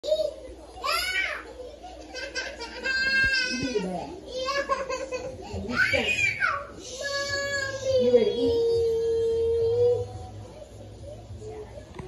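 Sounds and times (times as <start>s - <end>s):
cartoon children's voices on television: 0.0s - 12.0s.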